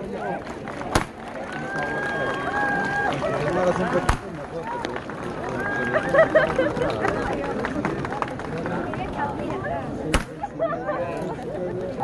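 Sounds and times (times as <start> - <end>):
crowd calling out and chattering: 0.0 - 12.0
sharp bangs: 0.9 - 1.2, 10.1 - 10.5.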